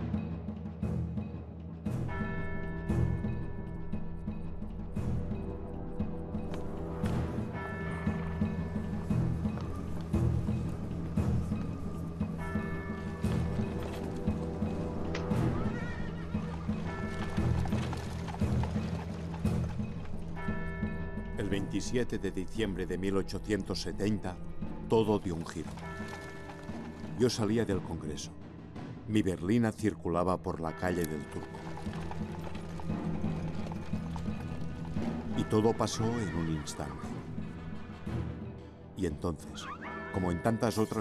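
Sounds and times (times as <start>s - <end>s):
dramatic background music: 0.0s - 41.0s
horse hooves on cobblestones: 2.0s - 29.0s, 30.6s - 38.5s.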